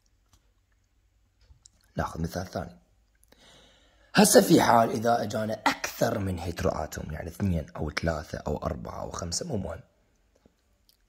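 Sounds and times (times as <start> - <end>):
low room hum: 0.0 - 11.0
man's voice: 4.2 - 9.8.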